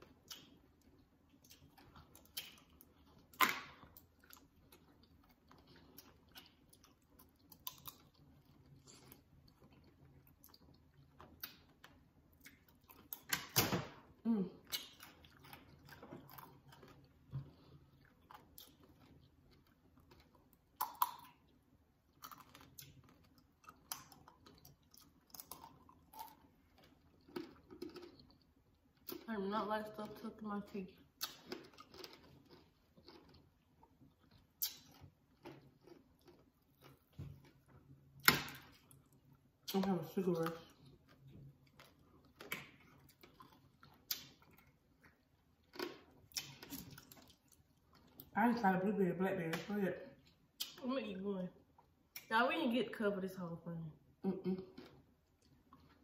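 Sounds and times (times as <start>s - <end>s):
candy shell crunching while chewing: 0.0s - 13.6s, 14.7s - 29.3s, 31.1s - 37.6s, 38.2s - 48.4s.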